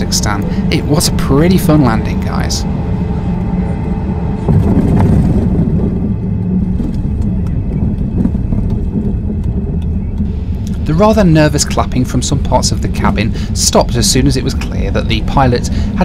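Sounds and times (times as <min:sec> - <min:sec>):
jet engines and runway rumble: 0:00.0 - 0:16.0
passengers clapping: 0:06.8 - 0:10.8.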